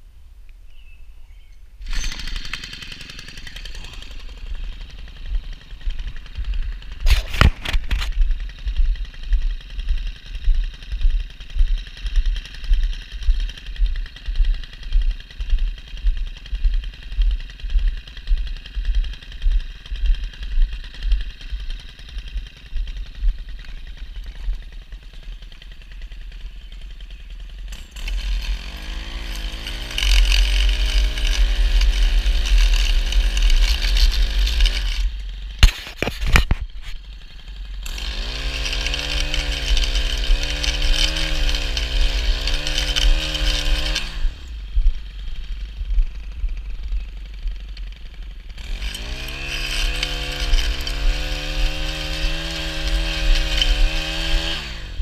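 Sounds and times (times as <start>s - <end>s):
edger engine running: 1.8s - 55.0s
starter cord pull: 7.0s - 8.2s.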